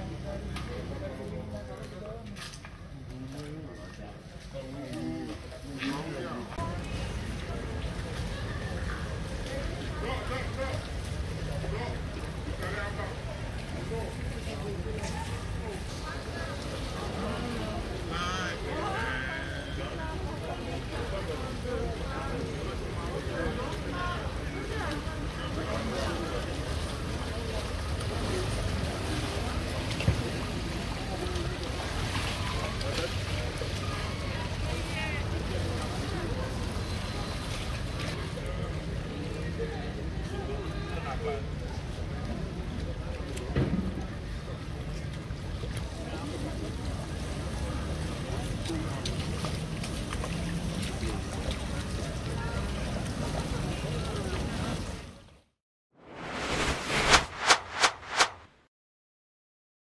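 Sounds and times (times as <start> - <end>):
faint voices of people: 0.0 - 47.2
steady low rumble: 56.0 - 58.6.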